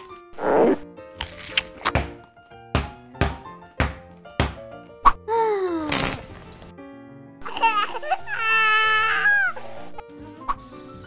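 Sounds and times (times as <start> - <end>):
background music: 0.0 - 11.0
cartoon baby crying: 5.3 - 6.2, 7.4 - 9.6.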